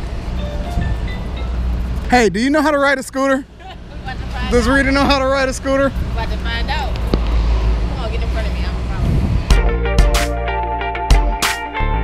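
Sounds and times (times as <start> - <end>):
low rumble of traffic: 0.0 - 10.9.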